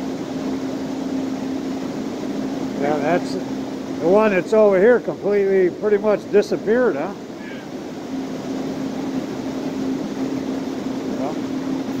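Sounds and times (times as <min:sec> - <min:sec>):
mechanical hum: 0:00.0 - 0:12.0
faint voice: 0:07.4 - 0:07.7.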